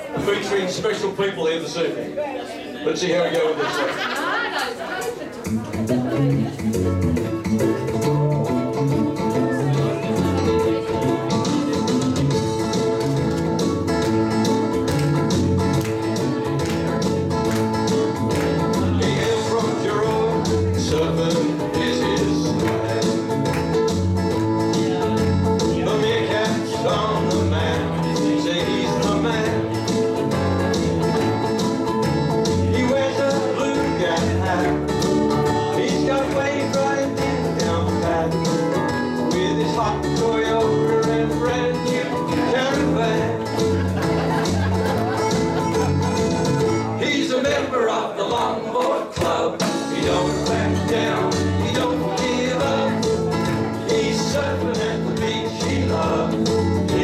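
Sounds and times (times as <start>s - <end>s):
ukuleles strumming: 3.4s - 57.0s.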